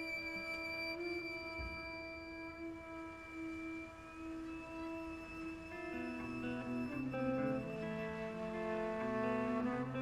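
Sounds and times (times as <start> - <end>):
faint higher tone: 0.0 - 8.8
trumpet holding long soft note: 0.0 - 10.0.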